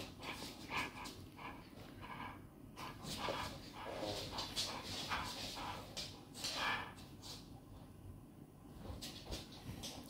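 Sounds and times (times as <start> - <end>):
dog play noises: 0.0 - 8.0.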